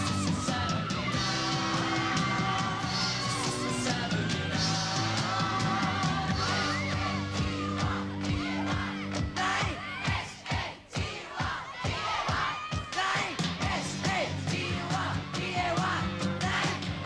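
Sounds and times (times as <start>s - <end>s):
young fans screaming: 0.0s - 10.3s, 11.7s - 13.4s
glam-pop band music: 0.0s - 10.7s, 12.9s - 17.0s.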